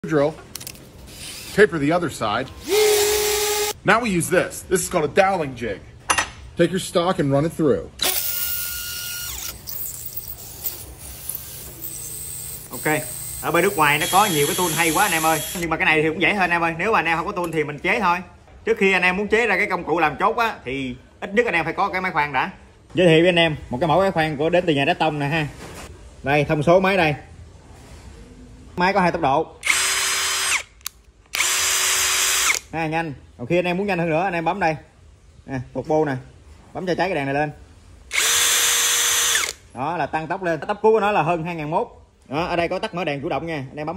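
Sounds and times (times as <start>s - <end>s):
cordless drill whining: 2.6s - 3.8s, 8.0s - 15.7s, 29.6s - 30.7s, 31.3s - 32.6s, 38.1s - 39.6s.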